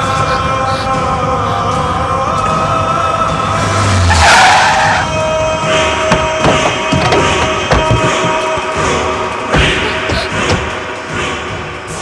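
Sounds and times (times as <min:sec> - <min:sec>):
tyres skidding on dirt: 0:03.5 - 0:09.2.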